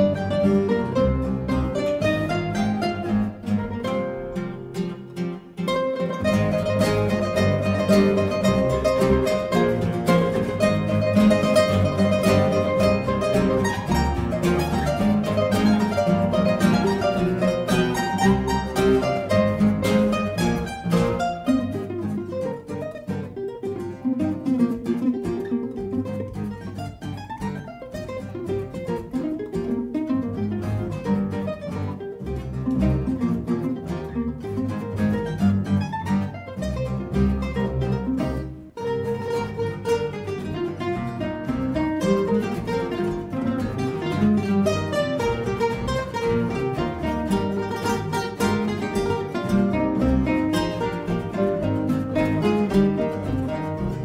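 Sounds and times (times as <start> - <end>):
acoustic bass guitar: 0.0 - 54.0
classical guitars playing: 0.0 - 54.0.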